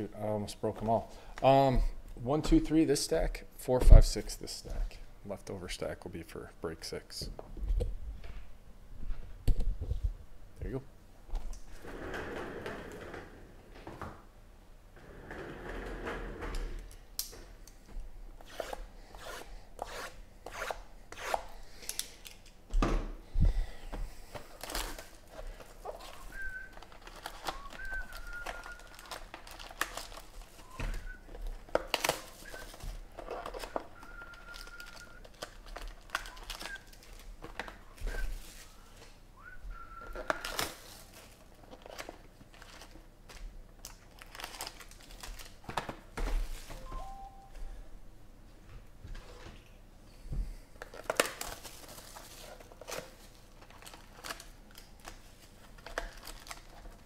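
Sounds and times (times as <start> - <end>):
plastic wrap tearing and crinkling: 24.5 - 39.0, 40.2 - 46.7, 50.8 - 57.0.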